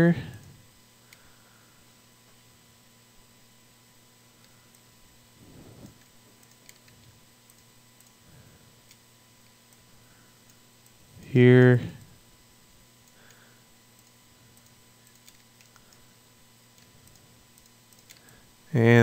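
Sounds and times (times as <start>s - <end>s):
faint electrical hum: 0.0s - 19.0s
soft noise: 5.3s - 6.3s
mouse and keyboard clicks: 5.9s - 8.2s, 14.0s - 16.0s, 16.8s - 18.4s.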